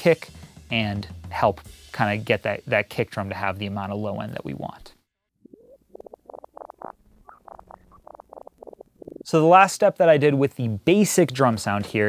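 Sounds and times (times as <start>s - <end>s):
tape squeaky chirps: 5.4s - 9.3s.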